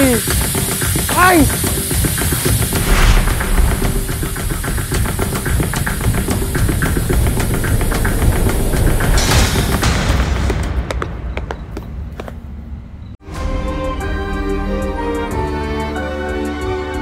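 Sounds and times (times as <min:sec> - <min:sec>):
heavy low rumble: 0:02.6 - 0:09.8
whoosh: 0:02.6 - 0:09.9.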